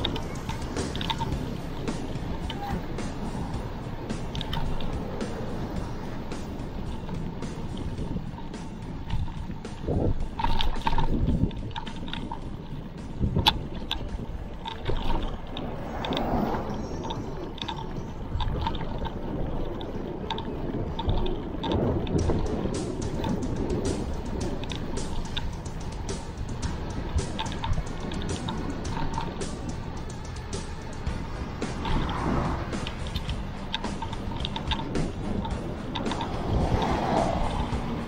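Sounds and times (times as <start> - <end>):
bike rattles and clicks: 0.0 - 38.0
tyre and road rumble: 0.0 - 38.0
wind on microphone: 0.0 - 38.0.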